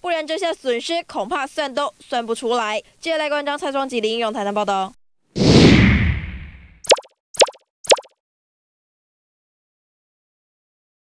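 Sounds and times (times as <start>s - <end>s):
whoosh with low rumble: 5.4s - 6.8s.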